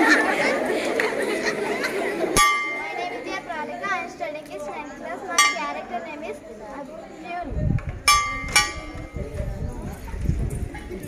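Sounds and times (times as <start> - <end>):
children chattering: 0.0 - 11.0
metallic clang: 2.4 - 3.2, 5.4 - 5.9, 8.1 - 9.3.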